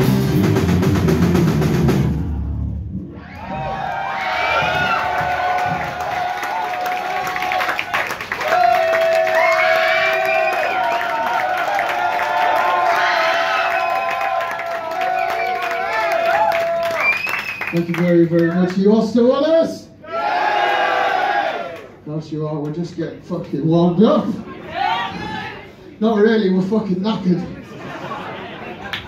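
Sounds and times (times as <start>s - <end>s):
heavy rock band playing: 0.0s - 3.7s.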